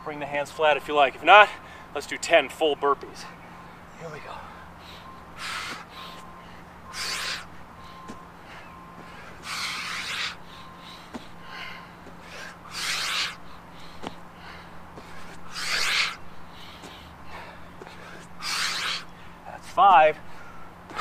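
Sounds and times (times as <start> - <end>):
soft breaths: 3.2 - 19.6.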